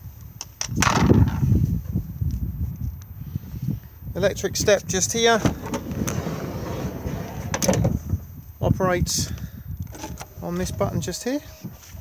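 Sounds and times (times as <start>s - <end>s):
wind or handling rumble on microphone: 0.0s - 12.0s.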